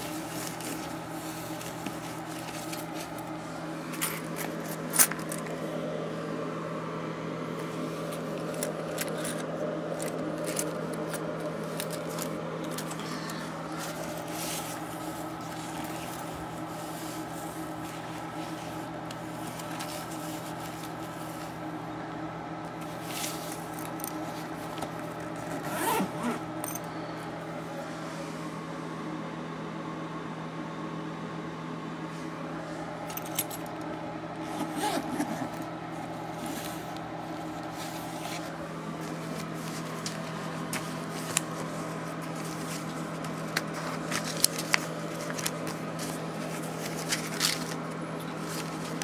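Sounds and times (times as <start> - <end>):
fabric bag rustling: 0.0 - 5.5, 7.6 - 21.7, 22.7 - 26.8, 34.4 - 49.0
steady low hum: 0.0 - 49.0
zipper: 22.9 - 26.8, 34.4 - 35.7.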